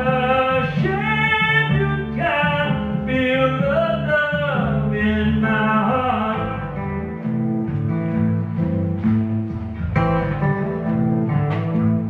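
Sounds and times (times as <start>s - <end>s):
man singing: 0.0s - 7.1s
acoustic guitar: 0.0s - 12.0s
low bass notes: 0.0s - 12.0s.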